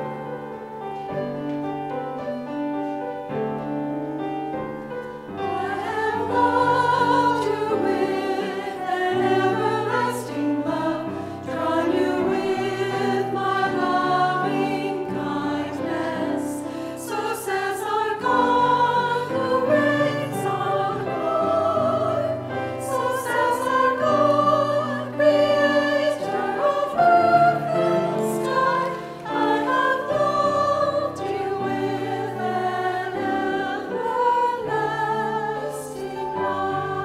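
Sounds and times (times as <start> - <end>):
choir singing in harmony: 0.0 - 0.9, 3.4 - 37.0.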